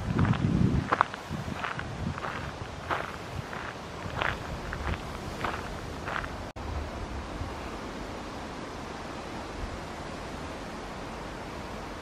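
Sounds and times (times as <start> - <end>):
footsteps on gravel: 0.0 - 6.4.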